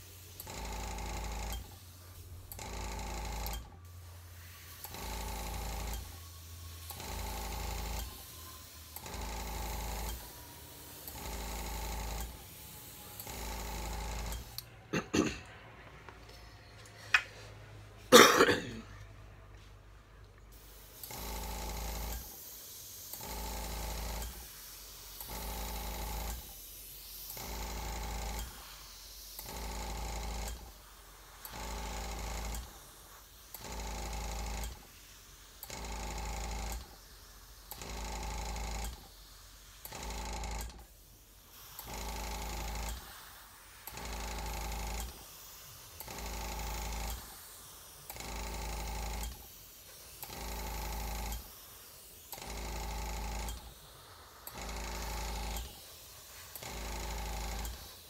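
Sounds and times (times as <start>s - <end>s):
airbrush spraying air hiss: 0.0s - 15.0s, 20.5s - 58.0s
air compressor humming: 0.0s - 58.0s.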